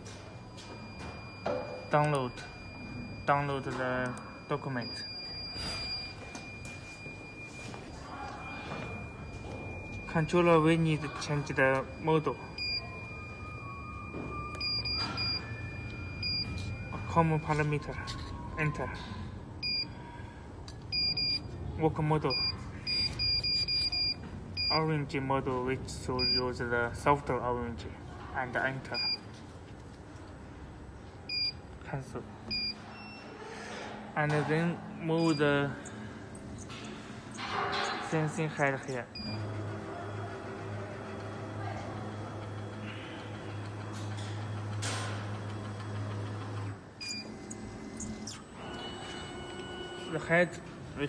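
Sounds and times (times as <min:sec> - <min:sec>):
keypad beeping: 0:00.5 - 0:17.8, 0:19.6 - 0:19.9, 0:20.8 - 0:21.5, 0:22.3 - 0:24.8, 0:26.2 - 0:26.5, 0:31.3 - 0:31.6, 0:32.5 - 0:33.3, 0:47.0 - 0:50.1.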